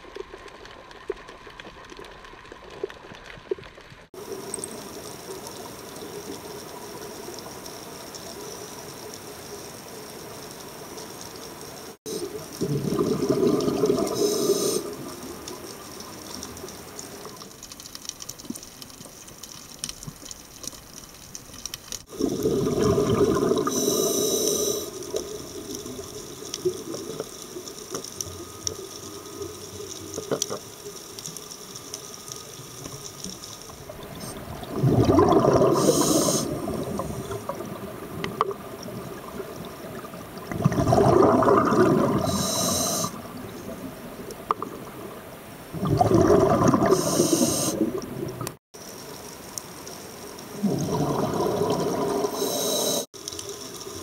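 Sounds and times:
exhaled bubbles rumbling underwater: 12.2 - 17.5, 22.1 - 24.3, 33.6 - 48.6, 50.5 - 53.0
regulator hiss: 14.0 - 16.0, 23.6 - 26.4, 35.7 - 37.4, 42.2 - 43.3, 46.9 - 47.9, 52.1 - 54.0.

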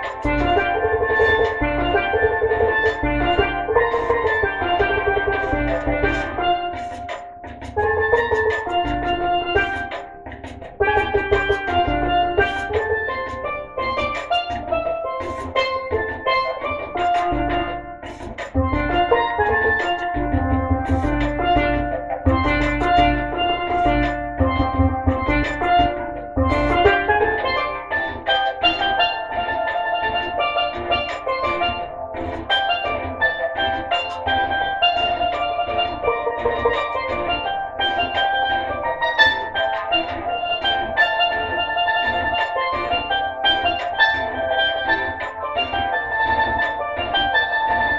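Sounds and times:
bass and drum pulse: 0.0 - 47.9
steel pan melody: 0.0 - 47.9.

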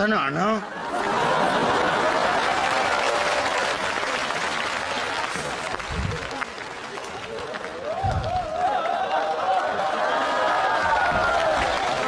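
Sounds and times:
audience applauding: 0.8 - 12.0.

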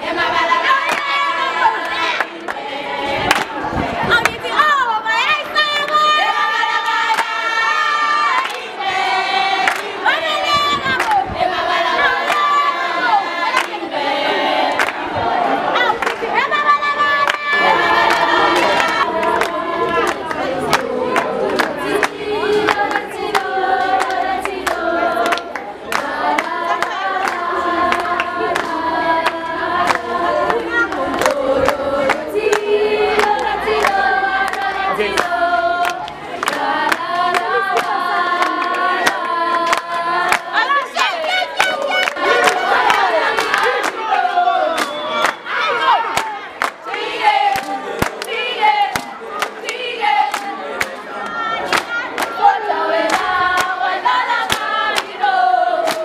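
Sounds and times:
girls singing together: 0.0 - 56.0
hand claps: 3.3 - 3.6, 9.6 - 9.9, 10.7 - 11.2, 13.5 - 13.8, 14.7 - 15.0, 18.0 - 44.0, 44.8 - 45.4, 46.1 - 52.4, 53.0 - 53.8, 54.4 - 55.2.

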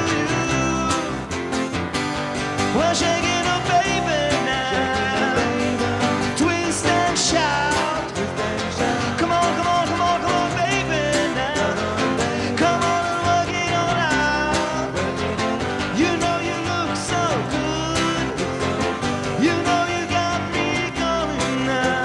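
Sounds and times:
man singing: 0.0 - 1.6, 2.5 - 22.0
strummed acoustic guitars: 0.0 - 22.0.

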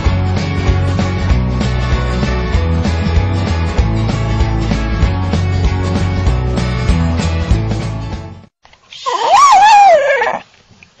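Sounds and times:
dog howling call: 9.0 - 10.4.

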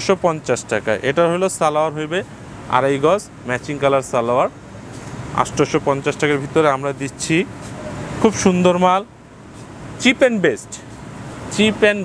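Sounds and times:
man speaking: 0.0 - 4.6, 5.2 - 9.1, 10.0 - 12.0.

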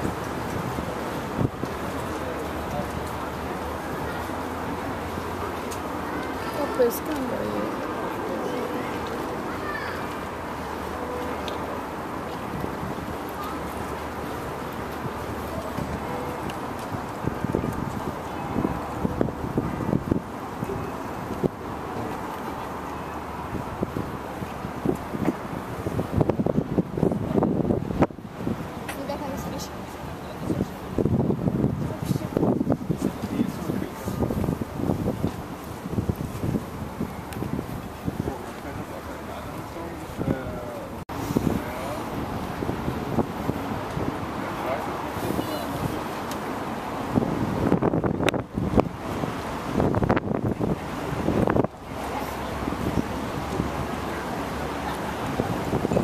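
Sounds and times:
wind buffeting microphone: 0.0 - 5.6, 12.1 - 56.0.

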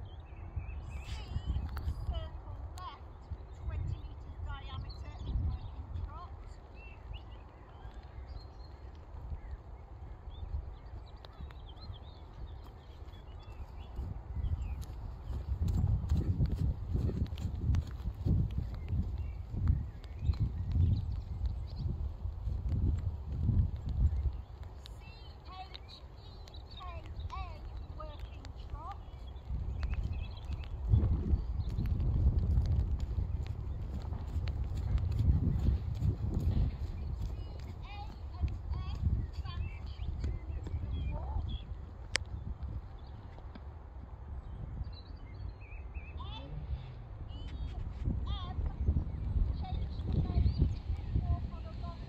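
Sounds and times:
steady low rumble: 0.8 - 52.0
horse hoofbeats: 11.0 - 43.7.

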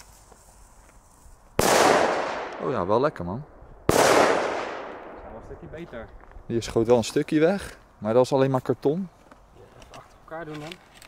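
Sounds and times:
firecracker bang: 1.6 - 2.9, 3.8 - 5.6.

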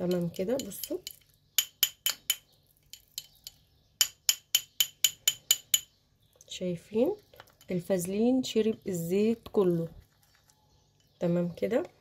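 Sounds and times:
spoon clinking against glass: 0.0 - 5.9.

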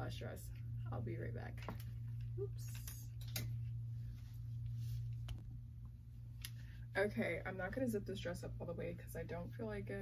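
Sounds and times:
steady low hum: 0.0 - 10.0
clicks and rustles of hanger: 2.6 - 3.6.

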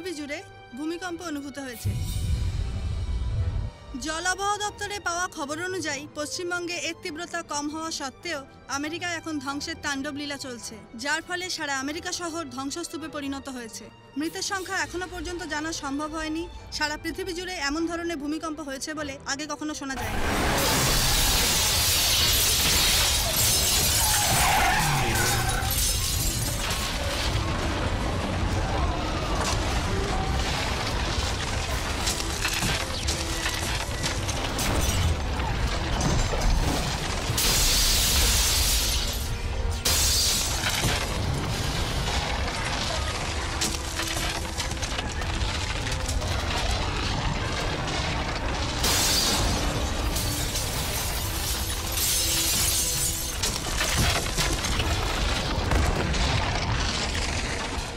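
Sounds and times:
glass shattering: 20.0 - 27.5, 30.1 - 46.6, 47.6 - 56.8
debris crashing: 20.0 - 57.9.

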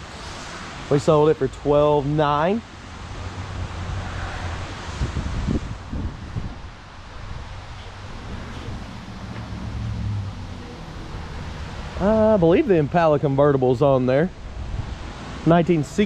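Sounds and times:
wind buffeting microphone: 3.2 - 13.1, 14.3 - 15.4.

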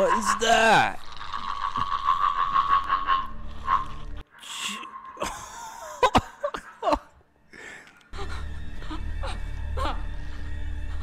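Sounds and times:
boy making croaking rattle: 0.0 - 4.0.

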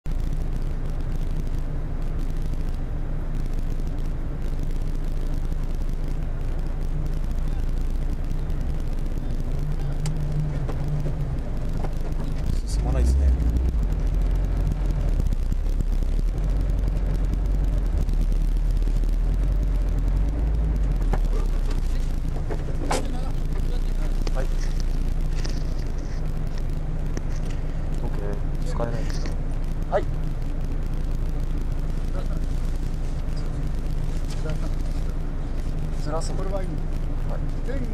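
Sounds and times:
car engine idling: 0.0 - 37.9.

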